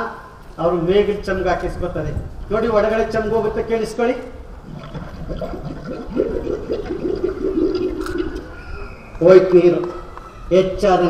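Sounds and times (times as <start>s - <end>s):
water gurgling in a clay pot: 4.5s - 8.6s.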